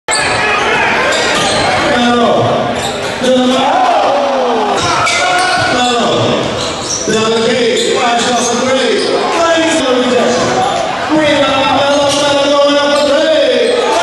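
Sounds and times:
spectators' voices and shouts: 0.1s - 14.0s.

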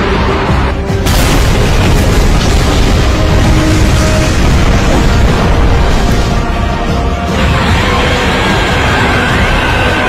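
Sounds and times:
deep rumble: 0.0s - 8.6s
loud explosion: 1.0s - 6.6s.

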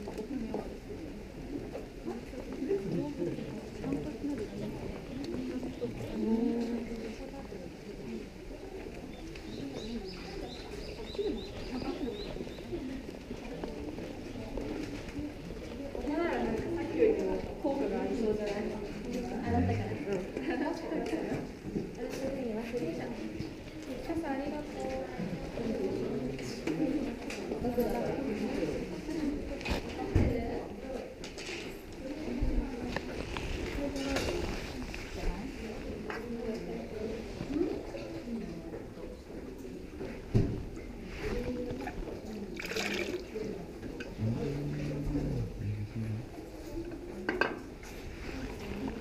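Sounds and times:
murmur of people talking: 0.0s - 49.0s.

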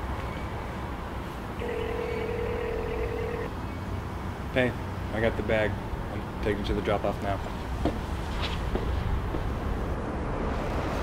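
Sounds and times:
telephone ringback beep: 1.6s - 3.5s.

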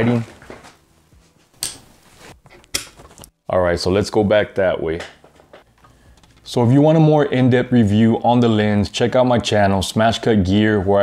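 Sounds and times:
soft rustles: 0.1s - 3.3s.

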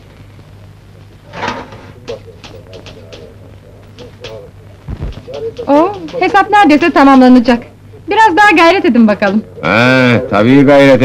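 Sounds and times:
steady low hum: 0.0s - 11.0s
faint murmuring: 0.2s - 11.0s.

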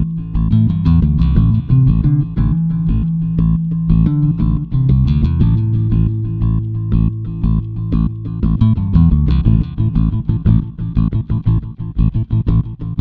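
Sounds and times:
bass guitar: 0.0s - 13.0s
guitar: 0.0s - 13.0s
steady beat: 0.0s - 13.0s.

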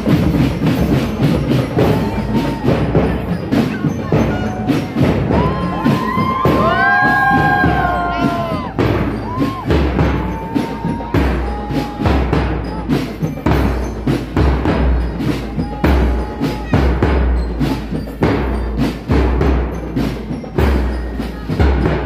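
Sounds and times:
marching drum strokes: 0.0s - 22.0s.

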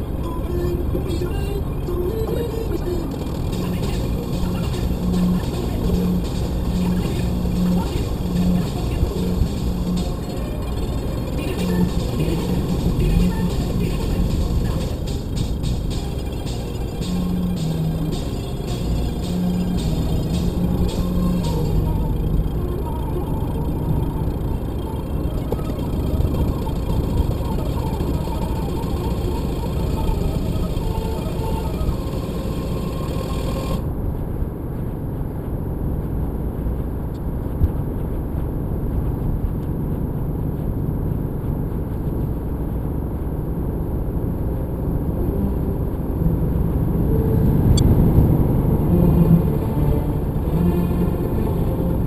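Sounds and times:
music playing: 0.0s - 33.8s, 45.0s - 52.0s
car engine and road noise: 0.0s - 52.0s.

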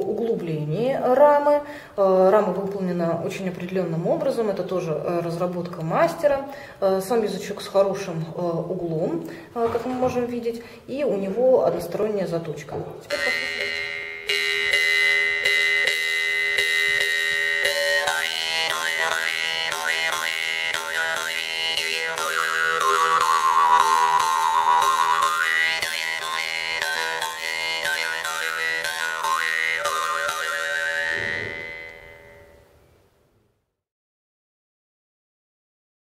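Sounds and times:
jaw harp twanging drone: 13.1s - 32.6s.

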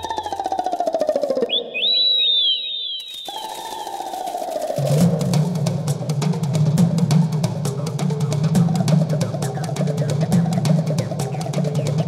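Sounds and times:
high whistle-like falling chirps: 0.0s - 4.8s.

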